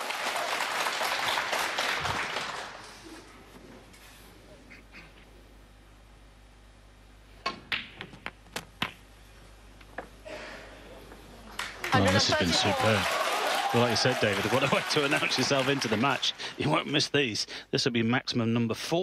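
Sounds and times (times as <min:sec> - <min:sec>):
crowd applause: 0:00.0 - 0:03.0, 0:11.4 - 0:16.9
snooker balls clicking: 0:07.4 - 0:09.1, 0:09.8 - 0:10.2.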